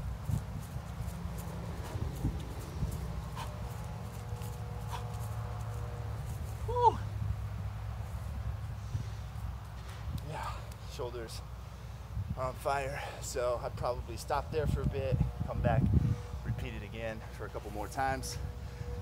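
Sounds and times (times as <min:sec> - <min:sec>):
feet and knees thudding on grass: 0:00.0 - 0:07.0
hard breathing: 0:01.8 - 0:03.9, 0:04.8 - 0:05.3.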